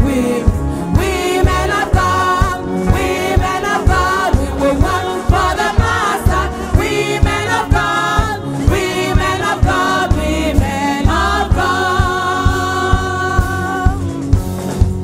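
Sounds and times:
voices singing together: 0:00.0 - 0:14.4
steady drum beat: 0:00.0 - 0:15.0.

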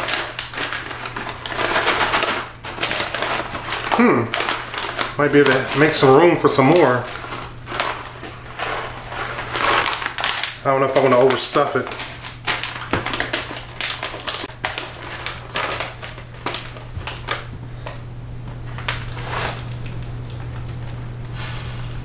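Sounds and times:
food bag crinkling and rattling: 0:00.0 - 0:18.0, 0:18.6 - 0:21.1
low steady hum: 0:00.0 - 0:22.0.

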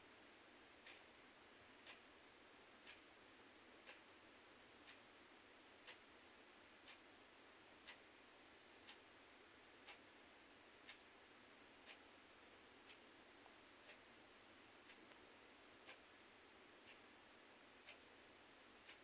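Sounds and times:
steady hiss: 0:00.0 - 0:19.0
clock ticking: 0:00.8 - 0:01.1, 0:01.8 - 0:02.1, 0:02.8 - 0:03.1, 0:03.8 - 0:04.1, 0:04.7 - 0:05.1, 0:05.8 - 0:06.1, 0:06.8 - 0:07.2, 0:07.8 - 0:08.2, 0:08.8 - 0:09.2, 0:09.8 - 0:10.1, 0:10.8 - 0:11.1, 0:11.8 - 0:12.2, 0:12.8 - 0:14.2, 0:14.8 - 0:19.0.

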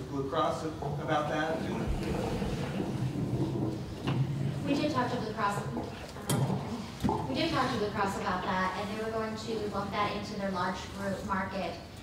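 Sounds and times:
low rumble: 0:00.9 - 0:05.1.

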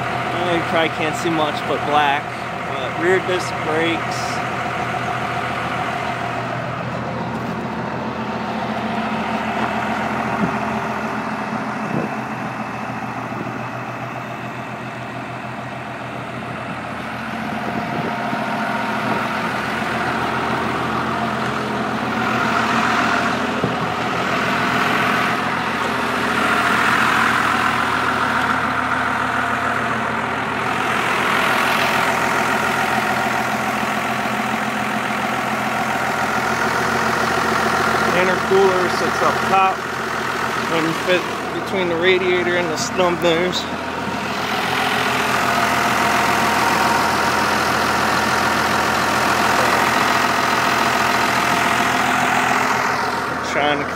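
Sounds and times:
diesel engine idling: 0:00.0 - 0:53.9.

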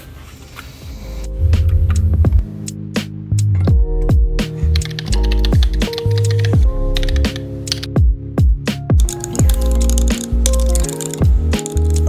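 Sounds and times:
background music with beat and bass: 0:01.0 - 0:12.0
typing on mechanical keyboard: 0:04.7 - 0:07.9, 0:09.0 - 0:12.0.

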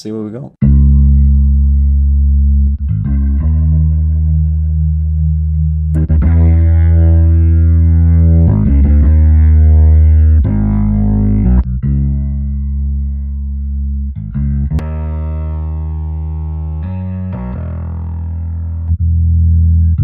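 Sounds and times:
bass guitar through rotary speaker: 0:00.6 - 0:20.0.

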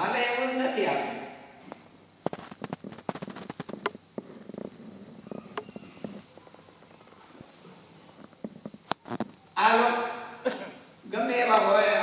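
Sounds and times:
sharp clicks and crackles: 0:01.7 - 0:06.4, 0:08.2 - 0:09.6.

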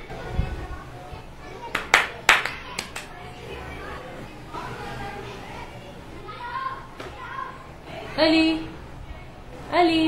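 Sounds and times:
sharp hand claps: 0:01.7 - 0:03.1.

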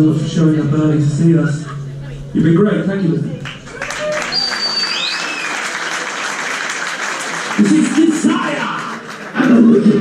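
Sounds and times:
audience applauding: 0:03.4 - 0:10.0
high whistle: 0:03.9 - 0:05.7.

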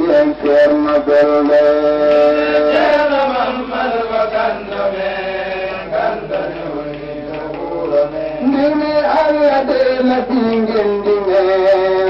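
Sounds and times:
voices chanting a devotional song: 0:00.0 - 0:12.0.

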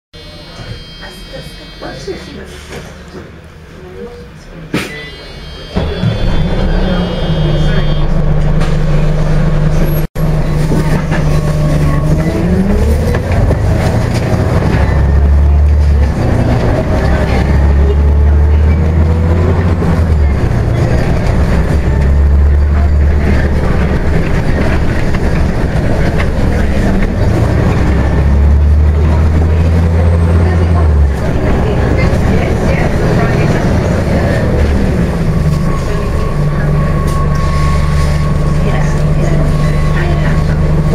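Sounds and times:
bus engine droning: 0:00.2 - 0:40.9.

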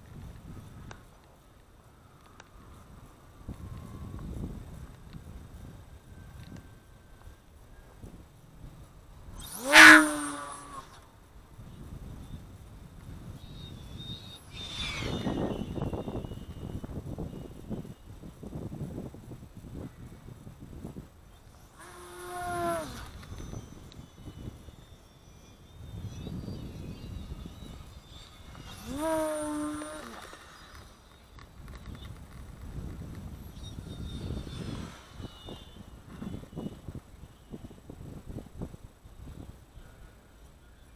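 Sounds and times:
model plane motor whine: 0:00.0 - 0:40.9
wind rumble on microphone: 0:00.0 - 0:40.9.

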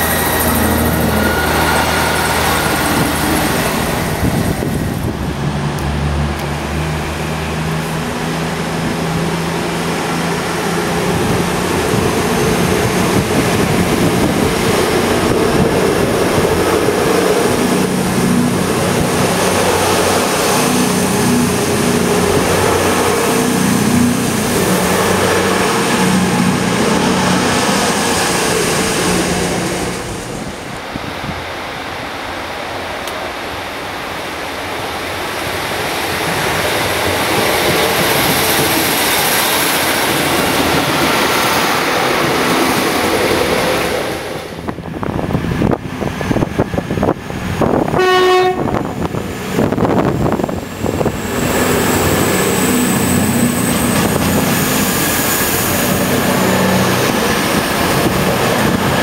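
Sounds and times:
rumble of approaching trains: 0:00.0 - 0:59.0
train diesel engines humming: 0:00.0 - 0:59.0.

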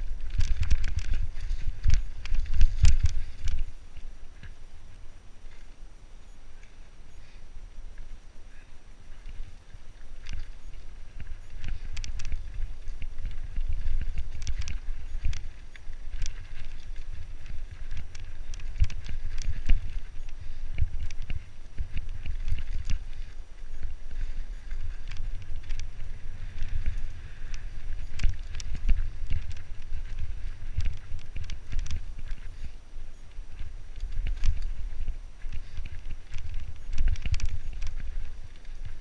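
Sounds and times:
bike tyres rolling on dirt: 0:00.0 - 0:39.0
wind buffeting microphone: 0:09.2 - 0:39.0.

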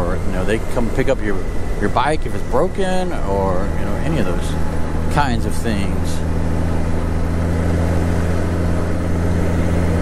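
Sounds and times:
motorcycle engine humming: 0:00.0 - 0:10.0
wind and road noise: 0:00.0 - 0:10.0.

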